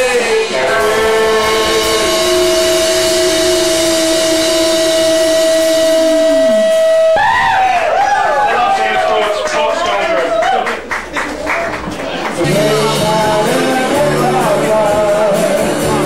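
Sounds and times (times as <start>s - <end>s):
psychedelic rock band: 0.0s - 7.6s, 12.4s - 16.0s
long steady high tone: 0.3s - 7.2s
voice with wavering pitch: 0.6s - 7.2s
sung note sliding down: 0.8s - 7.2s.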